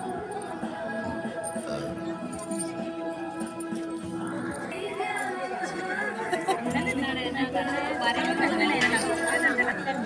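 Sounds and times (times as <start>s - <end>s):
women chattering in a crowd: 0.0s - 10.0s.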